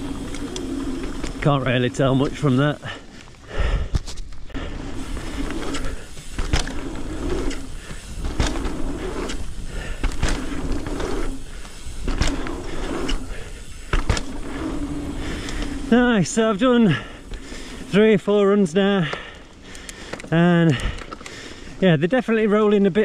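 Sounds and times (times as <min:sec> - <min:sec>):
bike tyres rolling on dirt: 0:00.0 - 0:23.0
bike knocks and rattles: 0:03.8 - 0:16.0.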